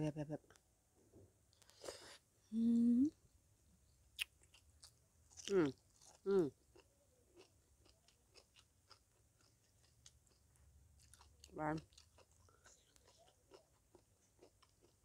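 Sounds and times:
appreciative mmm hums: 2.5 - 3.2
person chewing crunchy food: 4.2 - 15.0.

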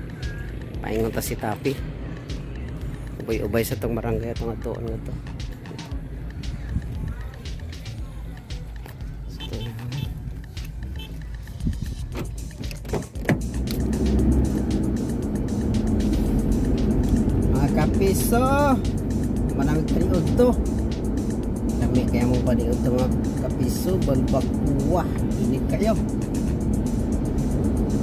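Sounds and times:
background music: 0.0 - 28.0
car engine and road noise: 0.0 - 28.0.

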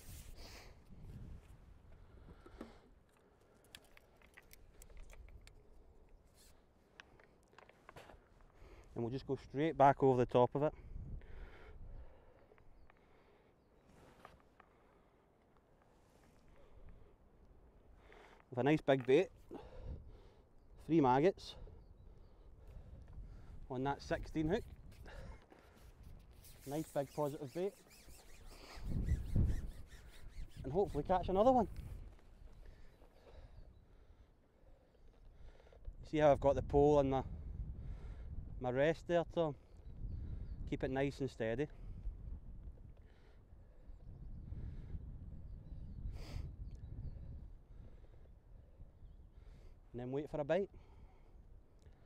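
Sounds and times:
wind buffeting microphone: 0.0 - 2.4, 10.8 - 12.2, 21.6 - 25.4, 28.7 - 32.7, 35.8 - 38.6, 39.8 - 40.9, 41.8 - 43.0, 43.6 - 49.6.

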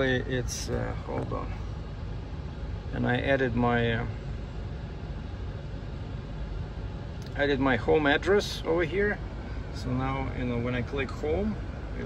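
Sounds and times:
car engine idling inside cabin: 0.0 - 12.0.

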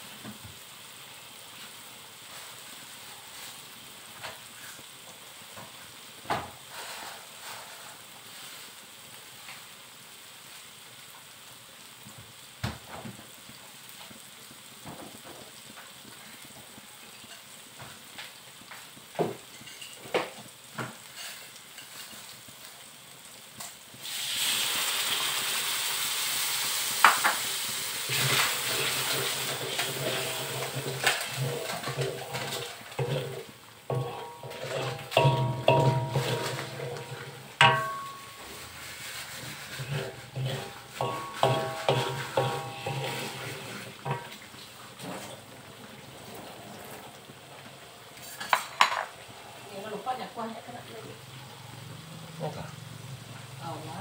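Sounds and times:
paste sizzling in a wok: 0.0 - 54.0
wooden spatula scraping a pan: 6.5 - 9.6, 18.7 - 22.5, 28.0 - 45.5, 46.2 - 50.5.

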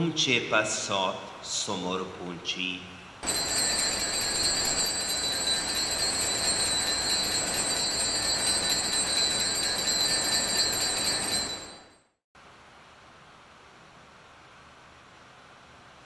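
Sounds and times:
altar bell ringing: 3.2 - 12.1.

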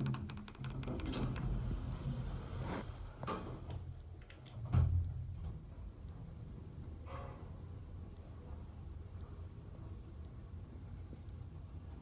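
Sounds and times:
elevator mechanism clicks: 0.0 - 1.6.

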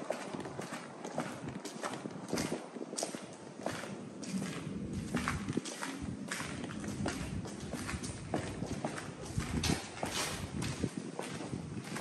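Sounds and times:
footsteps down hard stairs: 0.0 - 12.0.

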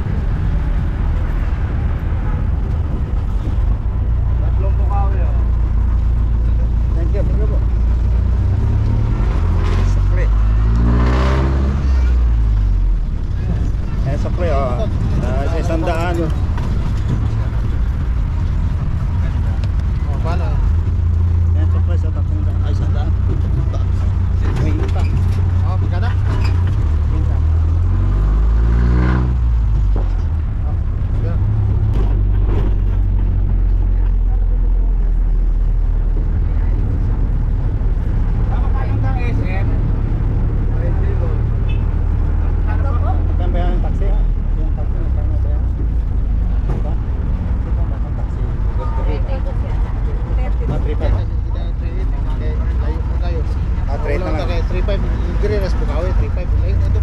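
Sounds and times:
vehicle engine rumbling: 0.0 - 57.0
engine revving: 4.4 - 51.3.

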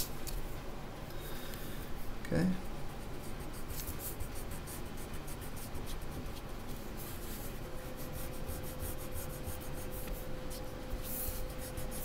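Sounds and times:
air circulator humming: 0.0 - 12.0
pencil scratching on paper: 3.0 - 12.0.

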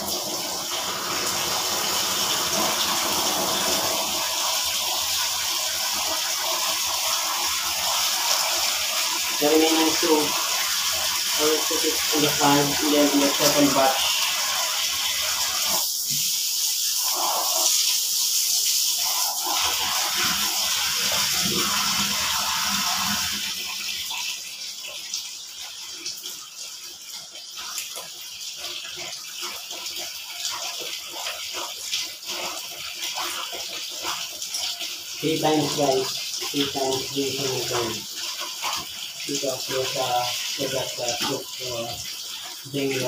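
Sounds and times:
tap water running into basin: 0.0 - 43.0.

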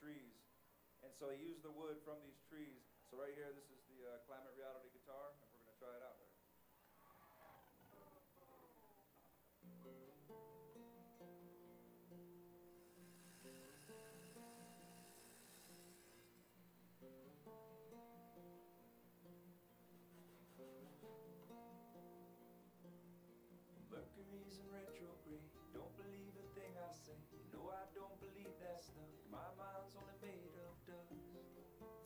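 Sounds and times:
acoustic guitar picking melody: 9.6 - 32.0.

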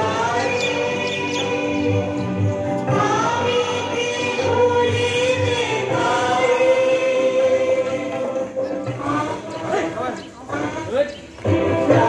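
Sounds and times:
group singing in chorus: 0.0 - 12.0.

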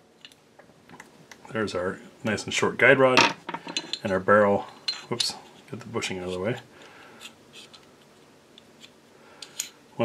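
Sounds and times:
small metal clicks: 0.2 - 0.4.

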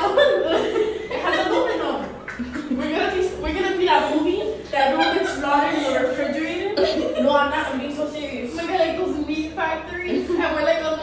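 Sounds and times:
people laughing: 0.0 - 8.0
people talking: 0.0 - 11.0.

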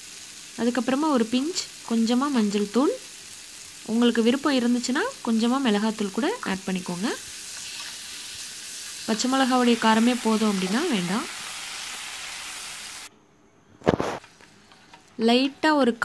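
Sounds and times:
food sizzling in a pan: 0.0 - 13.1.

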